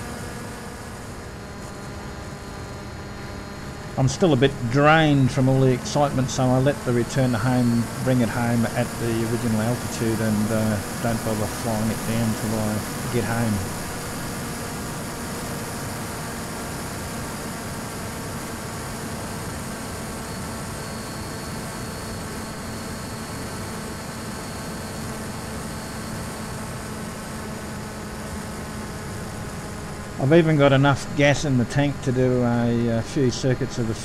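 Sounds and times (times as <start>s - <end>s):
electric motor and propeller humming: 0.0s - 34.0s.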